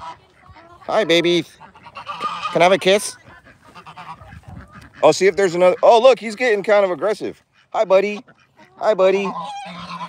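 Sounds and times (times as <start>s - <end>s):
goose honking: 0.0s - 10.0s.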